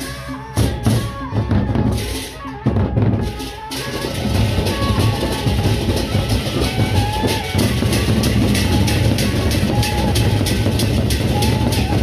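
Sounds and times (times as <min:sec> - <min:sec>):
barrel drums beaten with mallets: 0:00.0 - 0:12.0.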